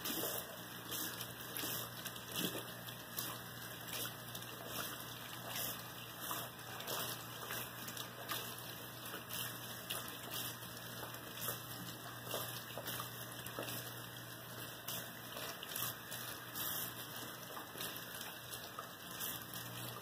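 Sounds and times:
faucet running: 0.0 - 20.0
water splashing: 0.0 - 20.0.

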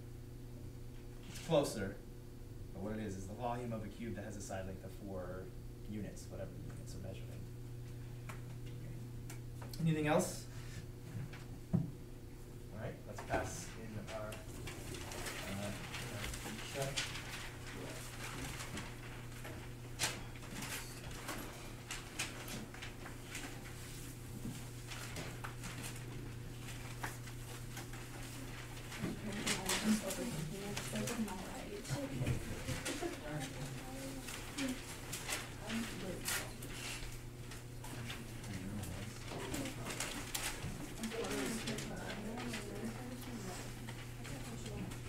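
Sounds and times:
low electrical hum: 0.0 - 45.0
paper rustling: 13.3 - 45.0
students talking quietly: 28.2 - 45.0.

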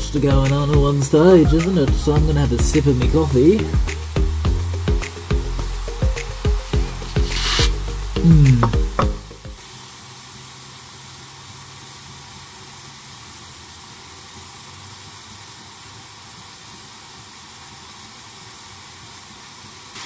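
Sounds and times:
chicken sizzling in a pan: 1.0 - 8.7, 9.6 - 20.0.

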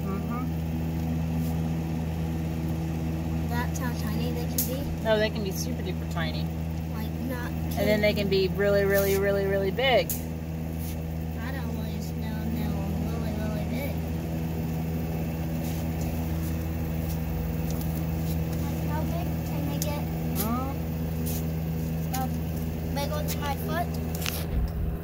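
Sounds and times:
low mechanical hum: 0.0 - 25.0.

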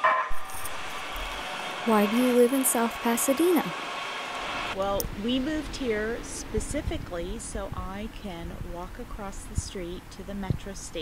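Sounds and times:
train running by: 0.4 - 8.8.

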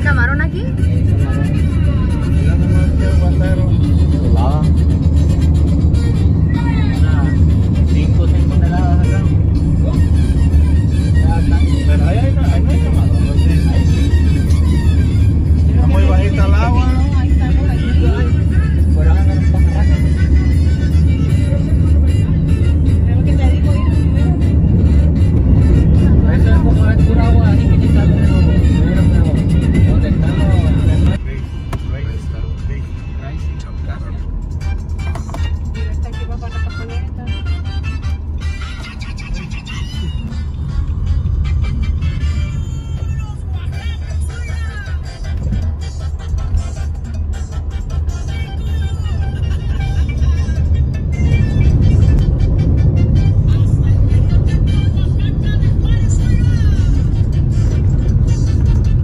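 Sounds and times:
music with singing voice: 0.0 - 59.0
road and engine noise in car: 0.0 - 59.0.

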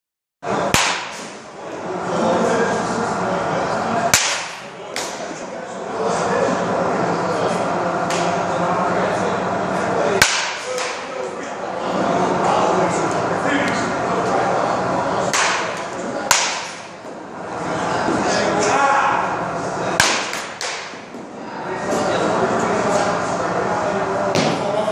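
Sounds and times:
room noise: 0.4 - 24.9
bat hitting baseball: 0.7 - 1.4, 4.1 - 5.2, 10.2 - 11.1, 15.3 - 16.9, 20.0 - 21.0.

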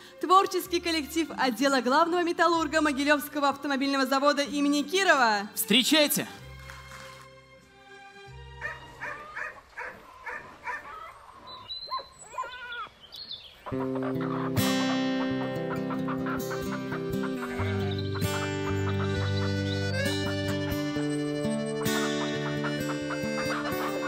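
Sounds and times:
animal calls: 8.6 - 13.0, 13.6 - 24.0
folk-style stage music: 13.8 - 24.0.

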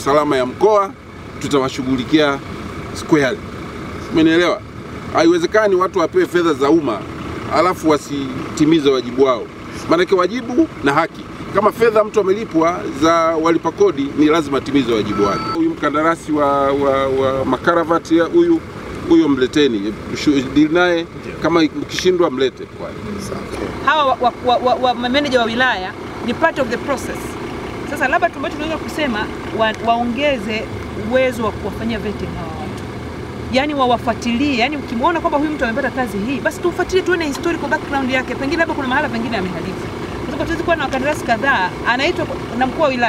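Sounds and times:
low steady rumble: 0.0 - 43.0
outdoor background noise: 0.0 - 43.0
man speaking: 5.2 - 23.8
woman speaking: 23.6 - 32.8, 33.5 - 43.0.

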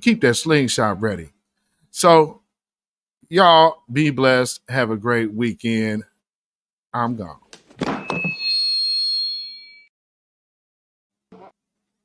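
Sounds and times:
high electronic chime: 7.9 - 9.9.

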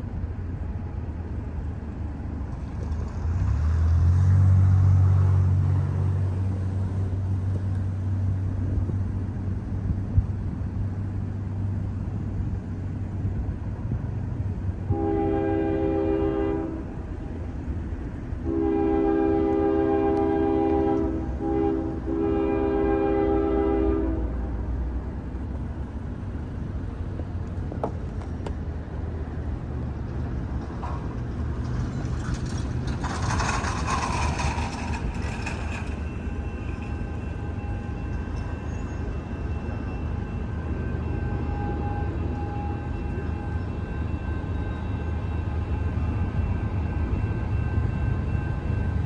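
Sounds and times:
distant locomotive air horn: 14.9 - 17.0, 18.4 - 24.5, 33.3 - 49.0.

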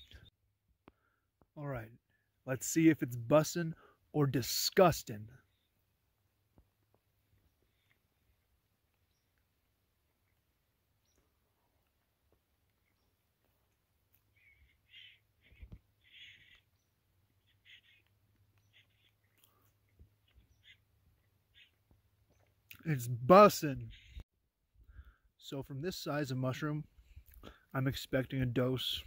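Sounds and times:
faint short bird calls: 14.3 - 20.9, 21.5 - 22.4.

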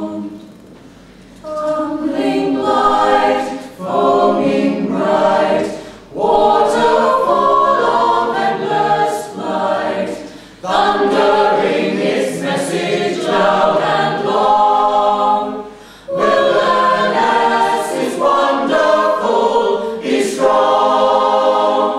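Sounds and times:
choir singing in harmony: 0.0 - 0.5, 1.4 - 21.9.

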